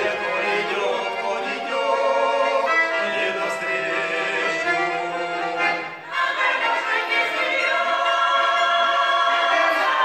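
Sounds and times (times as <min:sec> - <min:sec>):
folk choir singing: 0:00.0 - 0:10.0.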